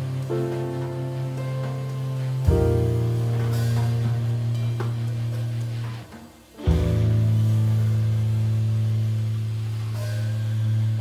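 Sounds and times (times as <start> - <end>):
jazz quartet holding chord: 0.0 - 11.0.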